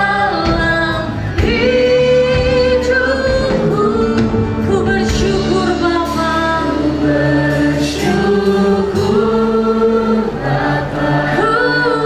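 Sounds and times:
mixed voices singing in harmony: 0.0s - 12.0s.

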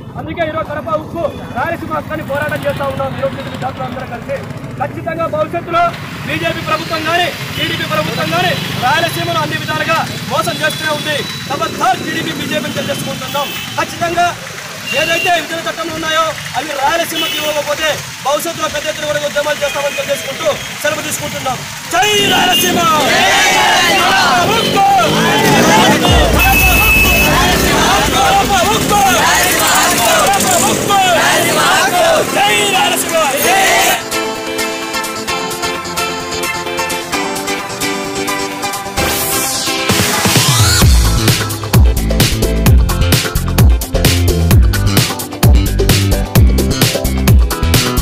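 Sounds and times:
man speaking loudly: 0.0s - 23.1s, 24.0s - 34.0s
protesters shouting slogans: 21.8s - 34.1s
steady high tone: 25.1s - 34.1s
low rumble: 26.0s - 29.6s.

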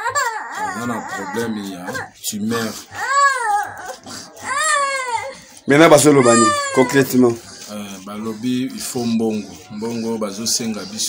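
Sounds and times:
small child crying: 0.0s - 7.4s.

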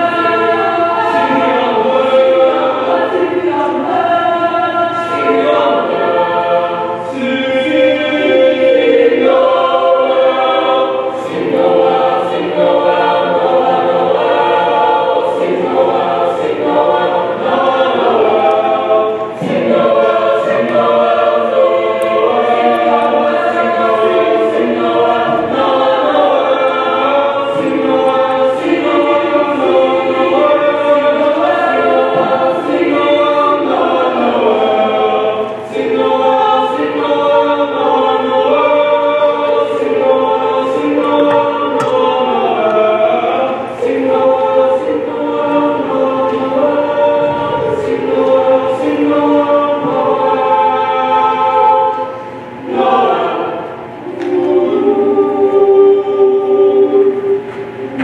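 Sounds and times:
choir singing in harmony: 0.0s - 58.0s.

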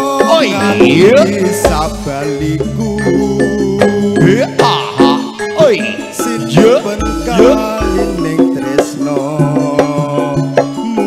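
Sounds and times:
gamelan music: 0.0s - 11.0s.

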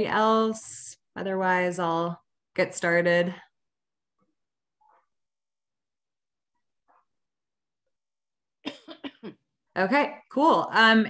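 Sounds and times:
person coughing: 8.7s - 9.4s.

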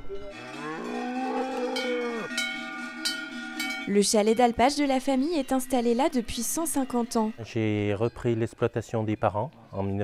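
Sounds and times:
cow bell clanking: 0.0s - 9.2s
cow mooing: 0.3s - 2.4s.

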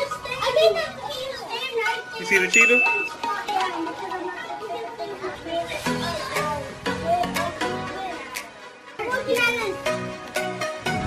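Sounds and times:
young children talking and calling out: 0.0s - 10.0s.

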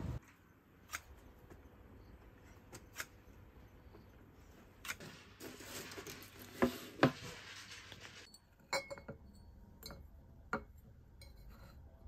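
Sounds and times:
glass vases clinking: 8.3s - 11.4s.

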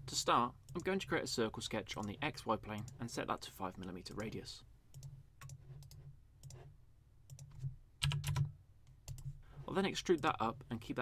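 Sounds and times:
computer mouse clicks: 4.1s - 6.7s, 7.3s - 9.3s.

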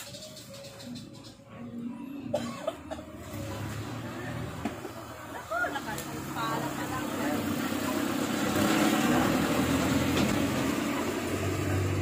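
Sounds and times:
vehicle engine running: 2.8s - 12.0s.

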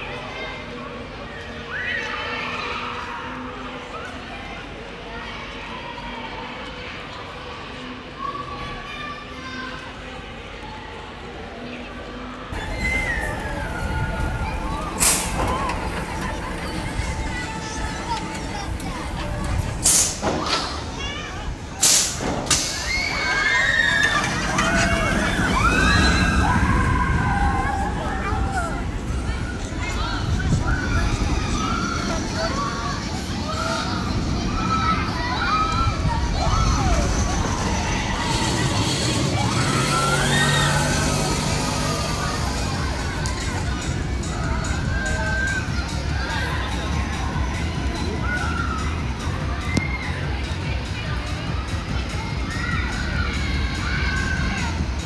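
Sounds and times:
mixed voices: 0.0s - 55.0s
roller coaster train rumbling past: 12.5s - 55.0s
falling high squeal: 12.6s - 15.9s, 35.4s - 42.0s
short loud hiss: 19.8s - 20.3s, 21.8s - 22.9s.

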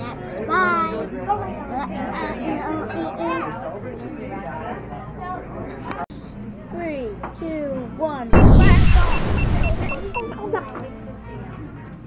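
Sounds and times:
music: 4.8s - 12.0s
loud boom: 8.4s - 10.2s
short high beeps: 8.4s - 10.3s.

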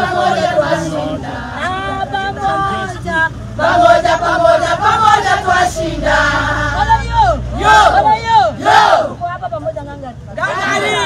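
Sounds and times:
women shouting and cheering: 6.8s - 9.3s, 10.3s - 11.0s.

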